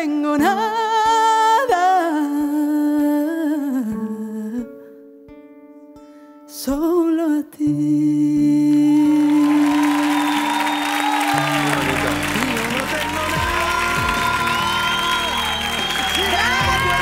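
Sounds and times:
woman singing with vibrato: 0.0s - 4.8s, 6.6s - 10.8s, 12.3s - 17.0s
audience applause and cheering: 9.0s - 17.0s
sustained backing chords: 11.3s - 17.0s.

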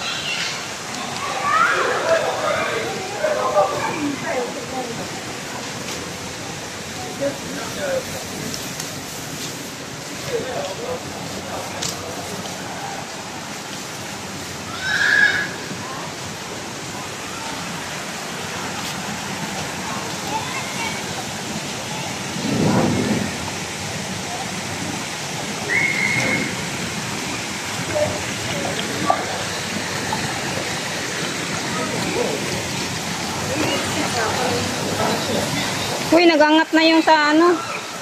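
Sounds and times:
distant voices: 0.0s - 38.0s
fountain water splashing: 0.0s - 38.0s
high shouts: 14.7s - 15.7s, 25.6s - 26.7s.

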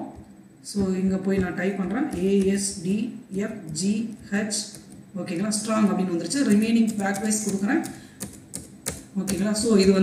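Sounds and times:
keyboard keys clicking: 6.3s - 10.0s.

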